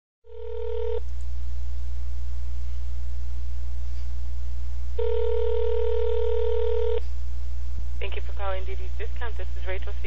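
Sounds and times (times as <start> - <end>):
low phone line hum: 0.2 - 10.0
telephone ringback tone: 0.3 - 1.0, 5.0 - 7.0.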